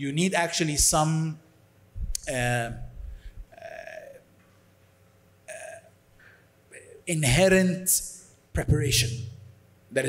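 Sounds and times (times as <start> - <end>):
man hesitating uh: 2.7 - 4.3, 5.5 - 6.0.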